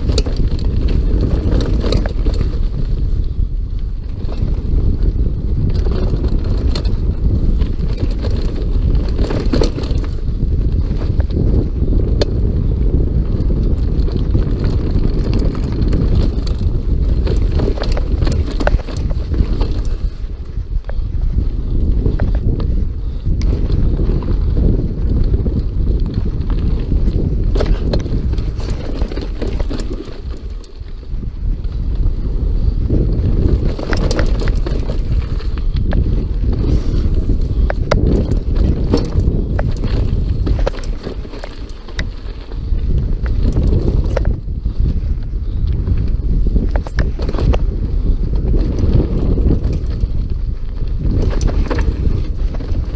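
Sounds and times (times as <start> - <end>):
bike rattles and knocks: 0.0 - 52.9
tyre rumble: 0.0 - 52.9
wind buffeting microphone: 0.0 - 52.9.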